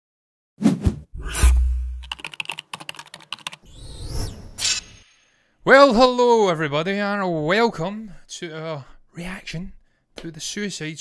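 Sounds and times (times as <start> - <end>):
rapid typing clicks: 2.0 - 3.7.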